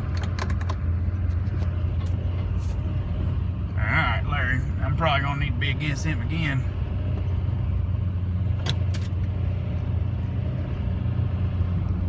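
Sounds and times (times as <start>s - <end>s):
diesel truck engine droning: 0.0s - 12.0s.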